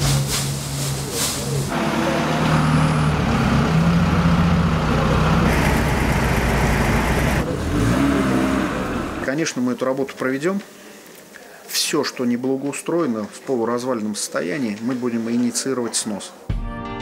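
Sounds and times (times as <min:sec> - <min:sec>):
loader engine revving: 0:01.6 - 0:09.3.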